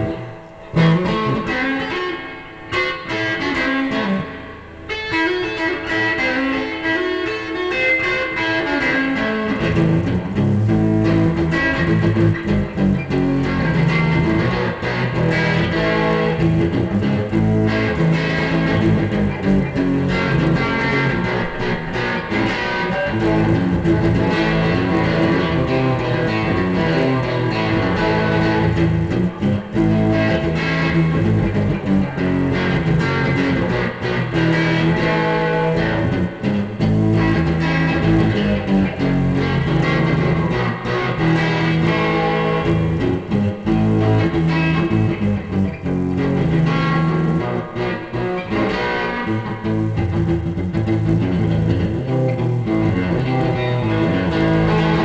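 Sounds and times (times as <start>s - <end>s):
electric guitar playing: 0.0s - 55.0s.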